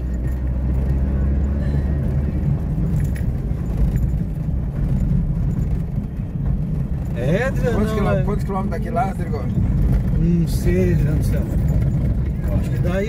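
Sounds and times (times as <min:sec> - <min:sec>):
engine and tyres rumbling on dirt: 0:00.0 - 0:13.0.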